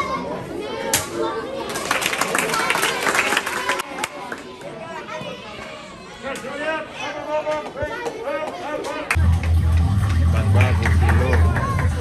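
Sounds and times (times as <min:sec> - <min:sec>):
children chattering: 0:00.0 - 0:09.2.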